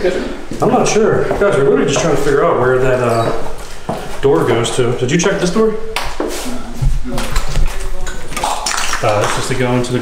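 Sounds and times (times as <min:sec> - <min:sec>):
people talking: 0:00.0 - 0:03.6, 0:04.2 - 0:10.0.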